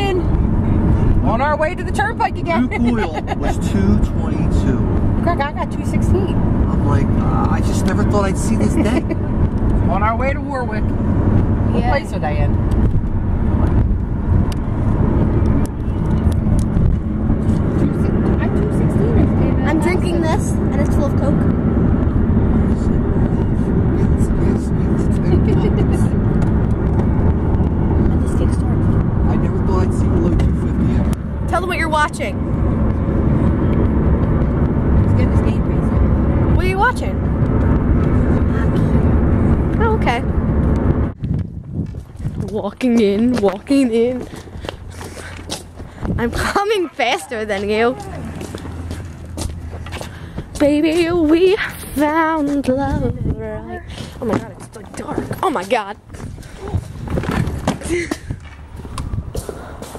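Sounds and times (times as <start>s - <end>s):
car road and engine noise: 0.0s - 59.9s.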